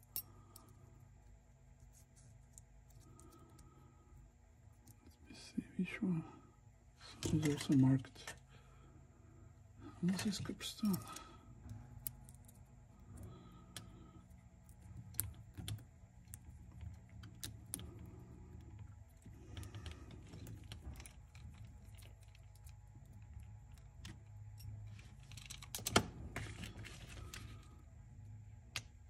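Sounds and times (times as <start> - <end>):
faint low hum: 0.0 - 29.0.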